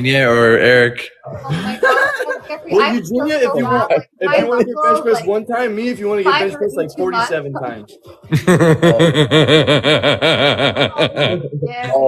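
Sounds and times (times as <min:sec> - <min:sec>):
person laughing hard: 0:01.4 - 0:02.5, 0:08.3 - 0:12.0.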